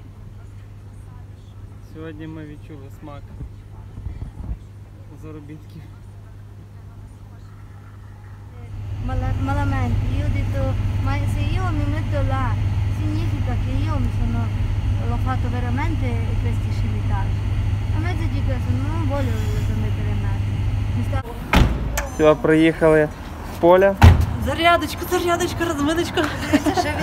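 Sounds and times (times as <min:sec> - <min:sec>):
voices talking: 0:02.5 - 0:27.0
engine and tyres rumbling: 0:08.6 - 0:27.0.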